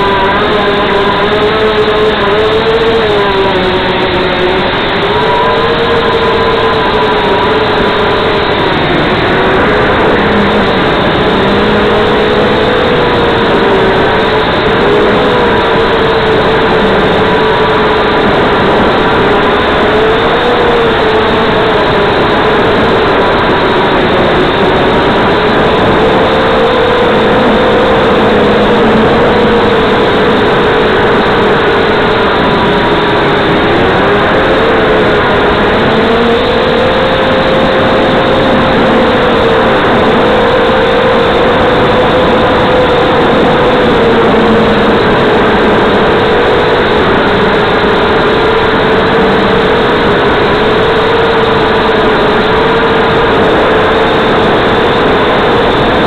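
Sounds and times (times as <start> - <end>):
drone motors whining: 0.0 - 56.0.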